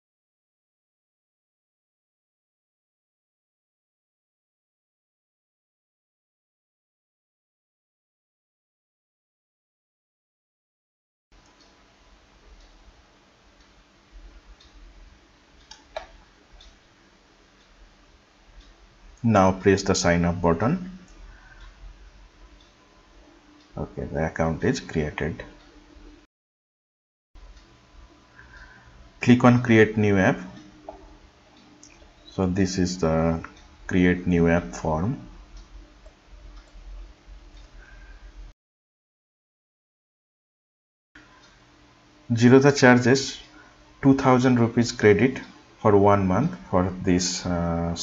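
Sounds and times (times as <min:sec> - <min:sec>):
low hum and hiss: 0:11.4 - 0:26.3, 0:27.4 - 0:38.5, 0:41.2 - 0:48.0
computer mouse clicks: 0:15.6 - 0:16.8
man speaking: 0:19.2 - 0:21.0, 0:23.8 - 0:25.5, 0:29.2 - 0:30.6, 0:32.3 - 0:35.3, 0:42.3 - 0:48.0.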